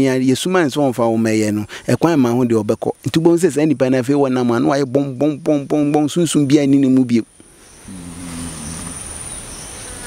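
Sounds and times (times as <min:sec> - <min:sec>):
insects buzzing: 0:00.0 - 0:10.0
soft background hiss: 0:00.0 - 0:10.0
man's voice humming low: 0:07.9 - 0:09.2.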